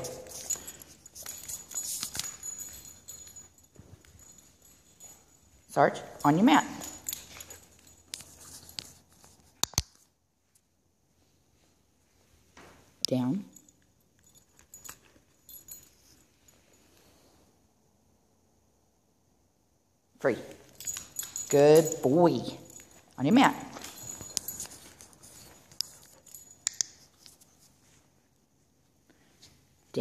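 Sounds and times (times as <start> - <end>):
dog clicking and jingling on floor: 0.0 - 10.6, 12.9 - 17.2, 20.3 - 28.1.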